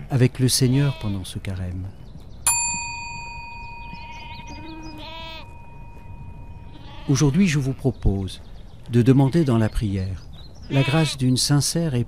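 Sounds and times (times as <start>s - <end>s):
small bell ringing: 2.5s - 7.2s
wavering animal call: 3.8s - 7.4s.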